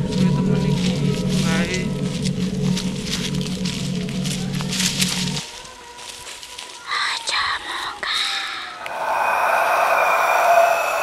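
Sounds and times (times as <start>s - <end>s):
person whispering: 6.8s - 8.8s.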